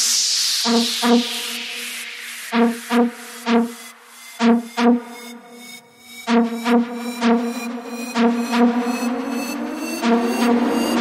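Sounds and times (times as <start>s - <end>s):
white-noise sweep: 0.0s - 11.0s
synth chord stabs: 2.5s - 11.0s.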